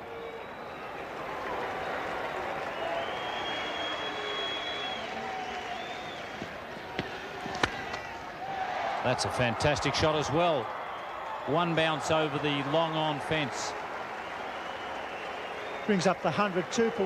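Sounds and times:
crowd applauding and calling out: 0:00.0 - 0:17.0
cricket bat striking ball: 0:06.3 - 0:08.2.

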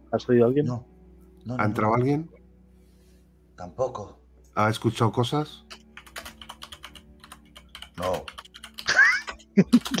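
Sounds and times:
typing on computer keyboard: 0:05.6 - 0:10.0.

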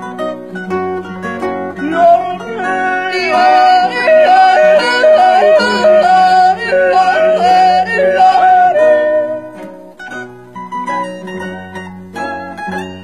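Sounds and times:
person yodeling: 0:01.8 - 0:09.6.

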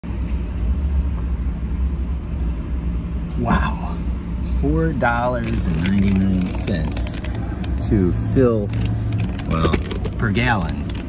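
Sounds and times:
faint hum: 0:00.0 - 0:11.0
low vehicle rumble: 0:00.0 - 0:11.0.

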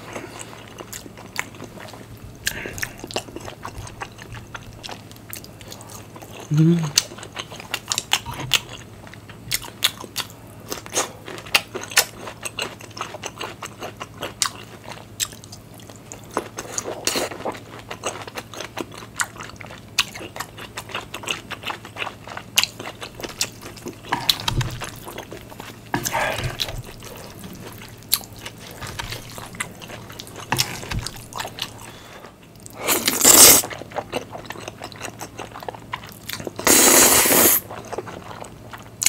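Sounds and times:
wet chewing: 0:00.0 - 0:39.0
noodle slurps: 0:36.6 - 0:37.6.

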